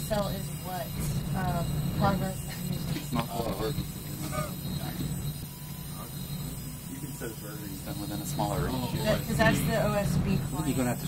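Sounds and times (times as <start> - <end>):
office background hum: 0.0 - 11.0.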